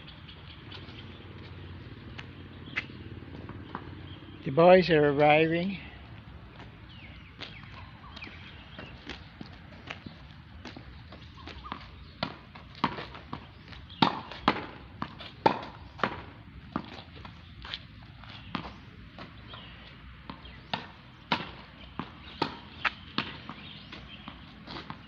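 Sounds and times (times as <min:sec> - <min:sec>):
ball bouncing on hard court: 0:02.1 - 0:04.0, 0:07.4 - 0:25.0
racket striking tennis ball: 0:11.4 - 0:25.0.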